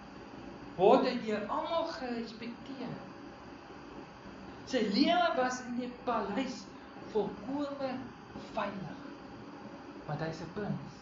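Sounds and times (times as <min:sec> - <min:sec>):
faint room hiss: 0:00.0 - 0:11.0
man speaking: 0:04.7 - 0:09.0.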